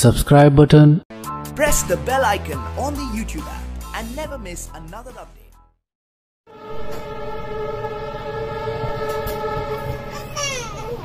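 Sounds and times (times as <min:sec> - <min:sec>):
locomotive horn blast: 0:06.5 - 0:11.0
train rumbling on track: 0:06.6 - 0:11.0.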